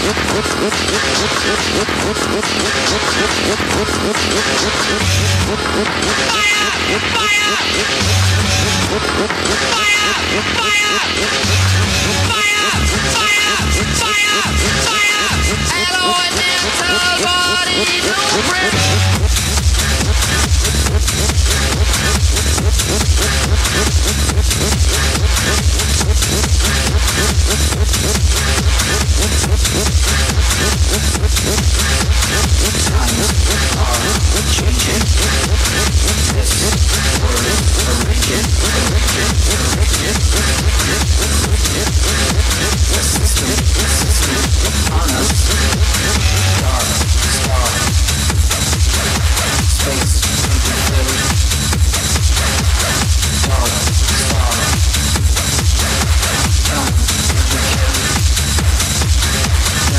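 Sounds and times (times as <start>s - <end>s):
techno beat with heavy bass: 0.0s - 59.9s.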